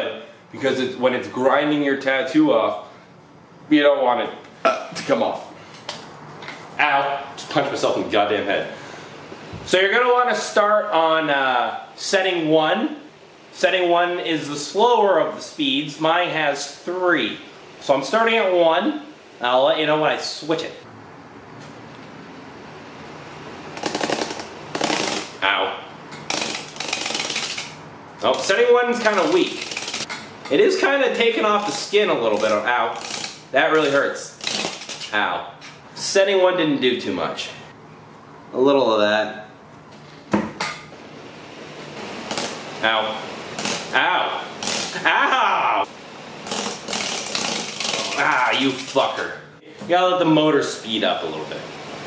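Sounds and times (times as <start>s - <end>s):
desk fan whirring: 0.0s - 52.0s
electric fan grinding rattle: 23.6s - 35.4s, 41.2s - 49.3s.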